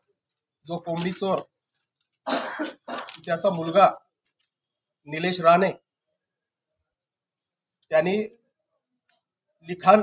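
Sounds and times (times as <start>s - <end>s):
man speaking: 0.6s - 1.5s, 3.1s - 4.1s, 5.0s - 5.9s, 7.9s - 8.4s, 9.6s - 10.0s
man coughing: 2.3s - 3.2s.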